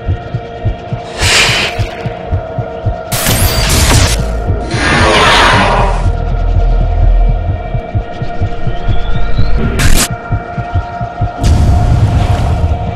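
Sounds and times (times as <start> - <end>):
low irregular throbbing: 0.0 - 12.9.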